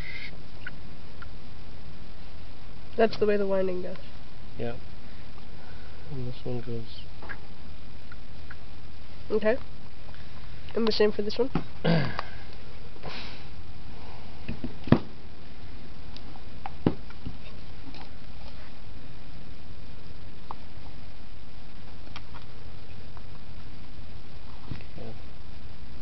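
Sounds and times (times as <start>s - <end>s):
low background noise: 0.0s - 26.0s
man coughing: 11.8s - 12.3s
man sniffing: 13.0s - 13.5s.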